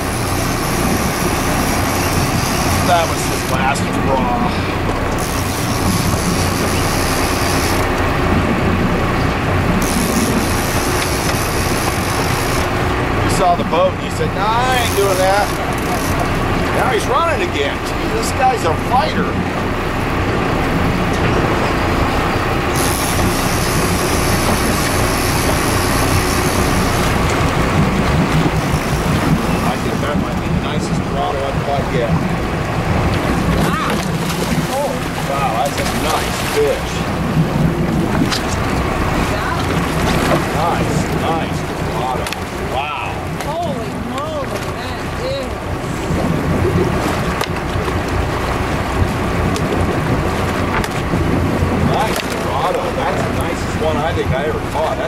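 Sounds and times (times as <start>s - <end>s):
boat engine running: 0.0s - 55.0s
water noise: 0.0s - 55.0s
wind: 0.0s - 55.0s.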